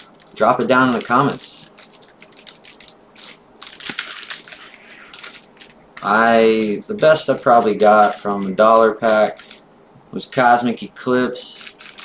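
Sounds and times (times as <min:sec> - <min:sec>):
foil wrappers crinkling: 0:00.0 - 0:09.6, 0:11.4 - 0:12.0.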